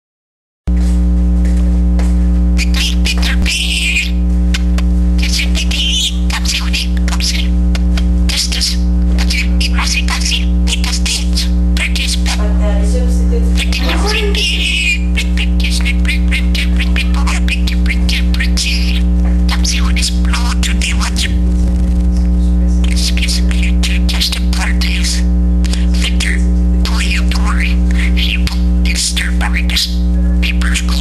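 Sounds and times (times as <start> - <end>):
electrical mains hum: 0.7 - 31.0
budgerigar chattering: 2.6 - 12.6, 13.4 - 22.2, 22.8 - 31.0.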